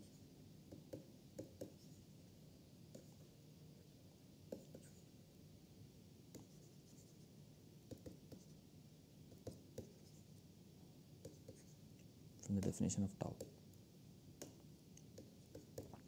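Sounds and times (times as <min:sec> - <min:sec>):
stylus tapping on pen tablet: 0:00.7 - 0:01.9, 0:06.3 - 0:06.6, 0:07.9 - 0:08.5, 0:09.3 - 0:10.1, 0:12.6 - 0:13.6, 0:14.4 - 0:16.0.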